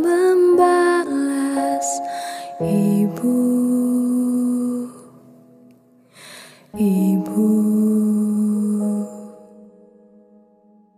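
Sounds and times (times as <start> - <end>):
soft music accompaniment: 0.0 - 10.9.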